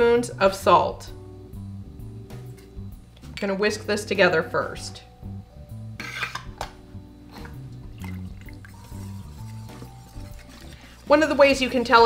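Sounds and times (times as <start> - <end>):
soft background music: 0.0 - 12.0
batter splashing: 7.4 - 12.0
whisk clinking against metal bowl: 8.7 - 12.0.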